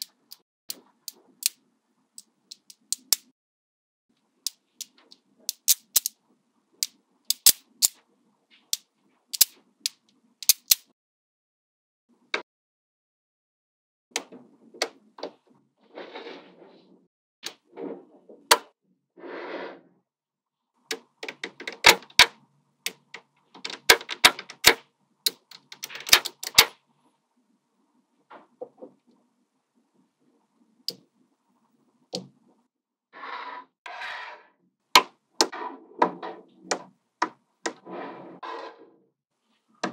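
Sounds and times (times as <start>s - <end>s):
magnetic balls clicking: 2.2s - 3.3s, 4.4s - 6.2s, 8.7s - 10.9s, 22.9s - 26.7s.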